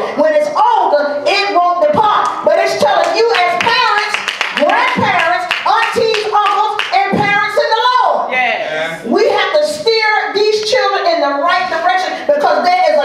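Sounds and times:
hand clapping: 0:02.8 - 0:07.0.

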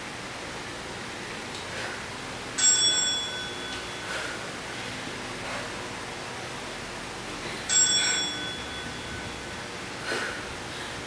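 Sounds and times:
small bell ding: 0:02.6 - 0:04.1, 0:07.7 - 0:09.6.

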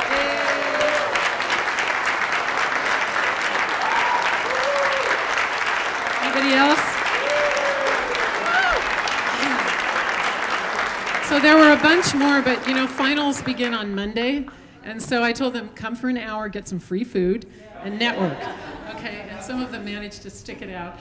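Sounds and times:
people calling out: 0:00.0 - 0:01.2
audience applauding: 0:00.0 - 0:14.6.

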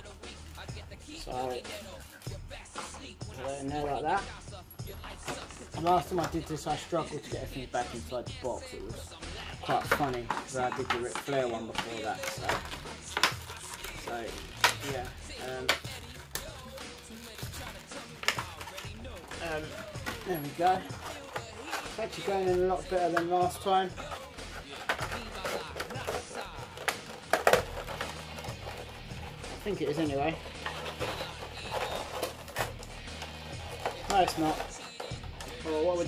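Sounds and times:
background music: 0:00.0 - 0:36.0
plastic and cardboard packaging handled: 0:09.6 - 0:35.8.

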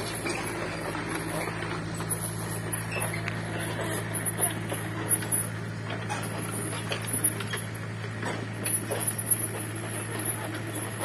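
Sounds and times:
excavator diesel engine running: 0:00.0 - 0:11.0.

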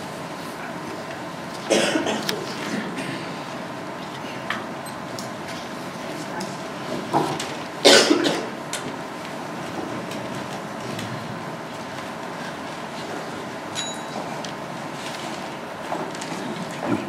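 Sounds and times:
person coughing: 0:01.7 - 0:03.4, 0:07.8 - 0:08.6.

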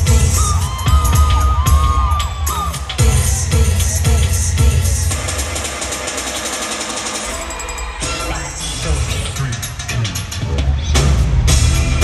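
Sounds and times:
drums: 0:00.0 - 0:12.0
heavy bass beat: 0:00.0 - 0:12.0
live concert music over pa: 0:00.0 - 0:12.0.

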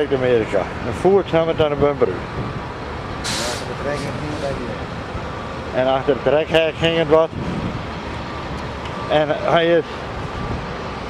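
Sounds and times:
outdoor background noise: 0:00.0 - 0:11.0
sharp hiss of air: 0:03.2 - 0:04.5.

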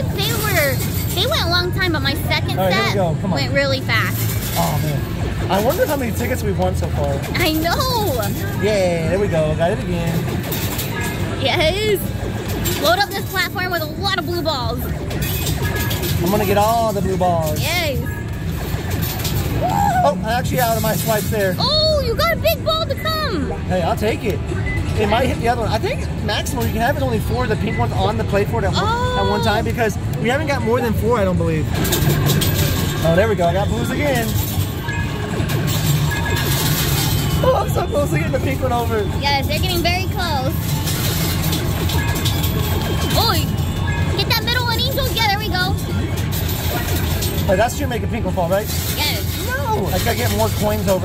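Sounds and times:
din of arcade machines: 0:00.0 - 0:51.0.

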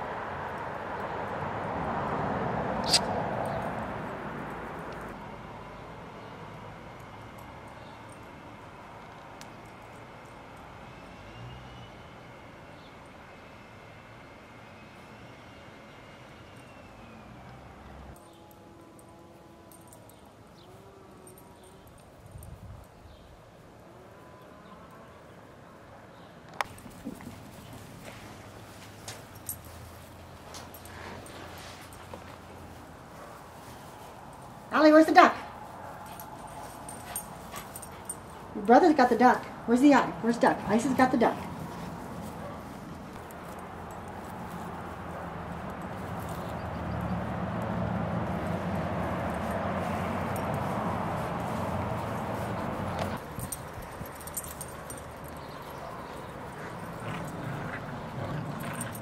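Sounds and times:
dog paws padding on grass: 0:26.6 - 0:59.0.

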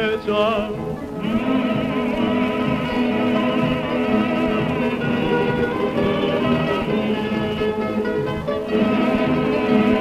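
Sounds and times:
balalaika orchestra playing: 0:00.0 - 0:10.0.

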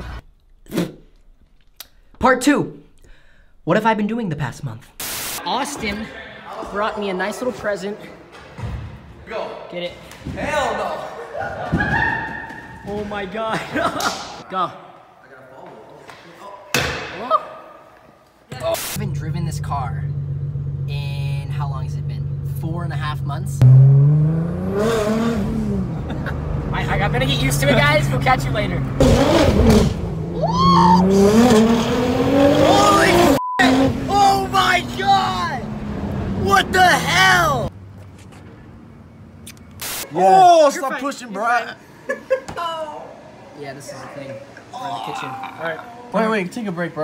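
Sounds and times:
loud burst of hiss: 0:05.0 - 0:05.4
person shouting: 0:30.4 - 0:31.2, 0:32.6 - 0:35.7, 0:36.4 - 0:37.7, 0:44.8 - 0:46.0
short cry: 0:30.4 - 0:31.2.

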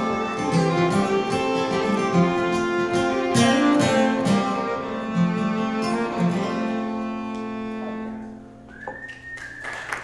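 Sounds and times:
fiddle and guitar chord ringing: 0:00.0 - 0:08.6
audience whistle: 0:08.7 - 0:10.0
audience clapping: 0:08.8 - 0:10.0.

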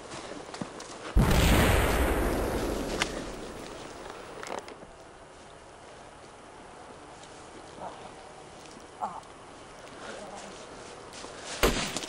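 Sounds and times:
loud bang with rumble: 0:01.2 - 0:04.0.

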